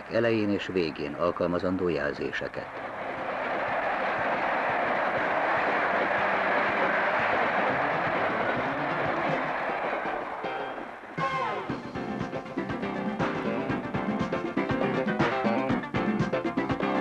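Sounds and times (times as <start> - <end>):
train coaches rolling on track: 0.0 - 11.2.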